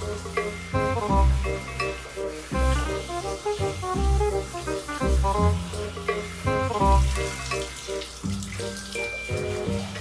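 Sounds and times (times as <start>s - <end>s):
background music: 0.0s - 10.0s
water spraying from shower head: 0.0s - 10.0s.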